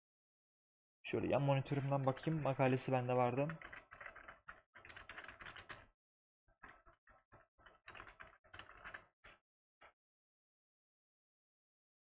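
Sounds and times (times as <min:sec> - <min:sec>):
computer keyboard typing: 0:03.4 - 0:06.0, 0:06.6 - 0:09.9.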